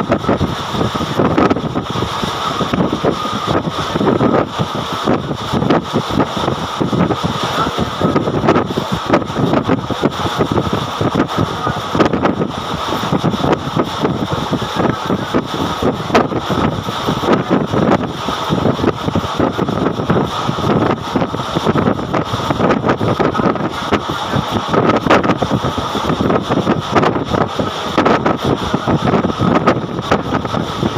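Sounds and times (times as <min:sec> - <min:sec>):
wind rushing on microphone: 0:00.0 - 0:30.9.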